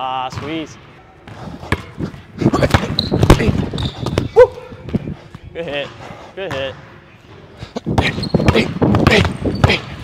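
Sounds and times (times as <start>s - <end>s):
sneakers squeaking on court: 1.2s - 5.1s, 6.6s - 10.0s.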